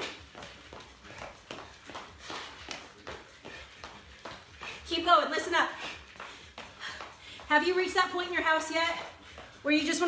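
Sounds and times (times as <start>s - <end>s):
footsteps running on wooden floor: 0.0s - 10.0s.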